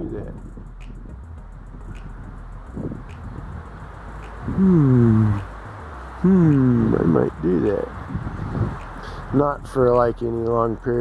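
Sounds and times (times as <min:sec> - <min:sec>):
low background rumble: 0:00.0 - 0:11.0
low moaning vocal sounds: 0:04.4 - 0:07.4.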